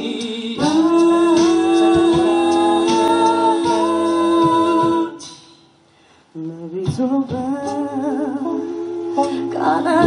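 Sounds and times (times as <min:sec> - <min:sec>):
a cappella group holding a chord: 0:00.0 - 0:05.5, 0:07.4 - 0:10.0
mouth-drum hits: 0:00.6 - 0:05.6.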